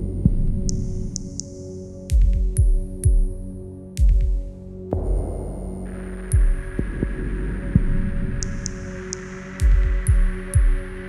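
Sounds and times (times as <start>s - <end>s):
low synthesizer hum tones: 4.9s - 11.0s.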